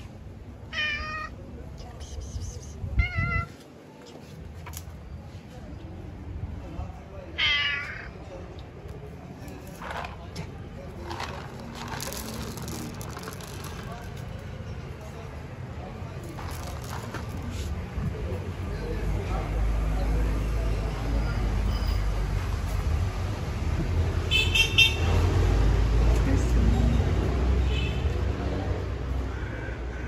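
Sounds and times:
cat meowing: 0.7s - 1.4s, 2.9s - 3.6s, 7.4s - 8.2s.

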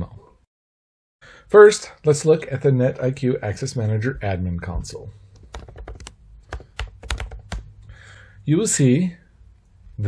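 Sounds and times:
typing on computer keyboard: 5.4s - 7.7s.

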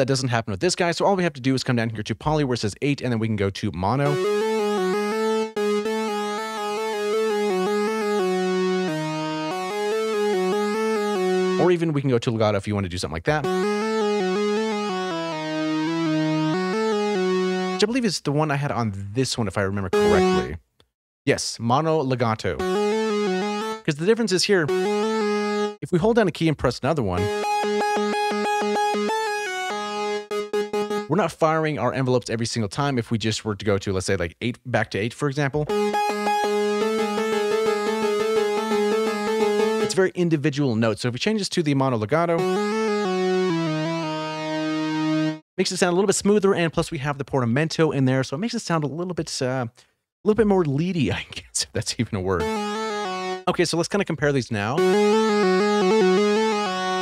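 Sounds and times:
synthesizer lead melody: 4.0s - 12.0s, 13.4s - 18.0s, 19.9s - 20.6s, 22.4s - 25.8s, 27.1s - 31.6s, 35.7s - 40.1s, 42.2s - 45.4s, 52.4s - 53.5s, 54.8s - 57.0s.

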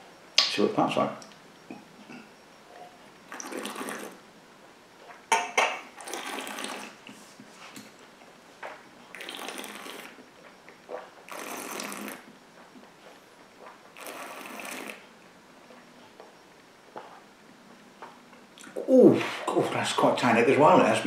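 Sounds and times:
person slurping: 3.3s - 4.2s, 6.0s - 7.0s, 9.1s - 10.2s, 11.3s - 12.3s, 14.0s - 15.0s.

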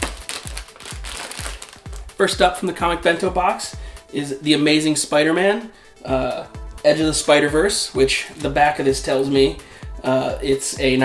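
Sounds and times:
packaging crinkling and rustling: 0.0s - 2.1s
background music with steady beat: 0.0s - 11.0s.

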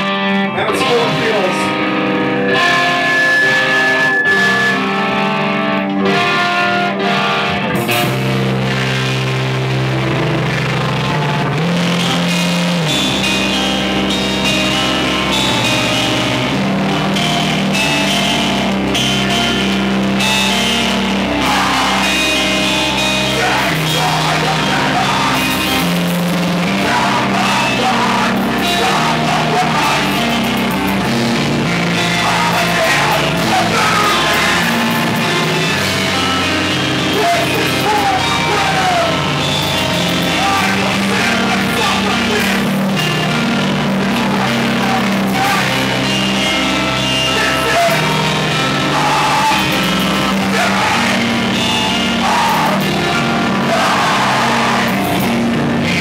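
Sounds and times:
bass guitar: 0.0s - 56.0s
drums: 0.0s - 56.0s
electric guitar: 0.0s - 56.0s
vocalist screaming into microphone: 21.4s - 30.6s, 31.9s - 56.0s.

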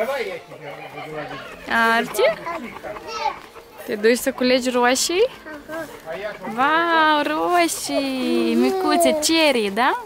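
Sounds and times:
toddler babbling: 8.3s - 9.6s.

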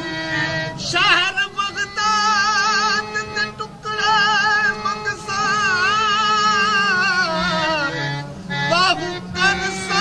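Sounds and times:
instrumental accompaniment: 0.0s - 10.0s
singer holding wavering notes: 0.0s - 10.0s.

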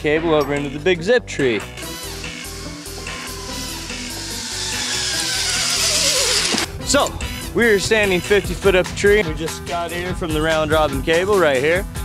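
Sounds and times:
background music: 0.0s - 12.0s
zip line pulleys hissing on cable: 2.0s - 6.7s.

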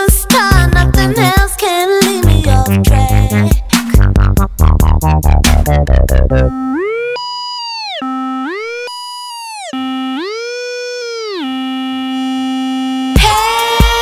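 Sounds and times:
dubstep beat: 0.0s - 6.5s, 13.0s - 14.0s
gliding synthesizer tone: 5.8s - 13.1s.

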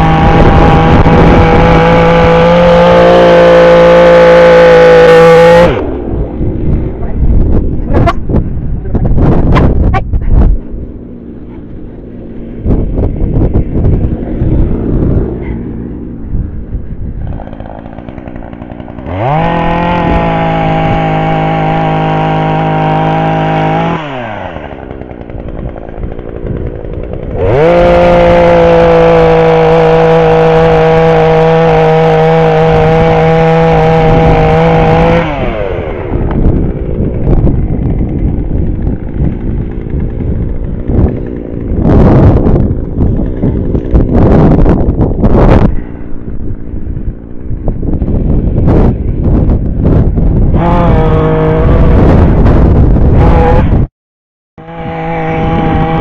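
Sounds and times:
chainsaw revving and idling: 0.0s - 8.2s, 11.0s - 16.4s, 17.1s - 53.9s, 54.6s - 56.0s
wind buffeting microphone: 0.0s - 53.9s, 54.7s - 56.0s.

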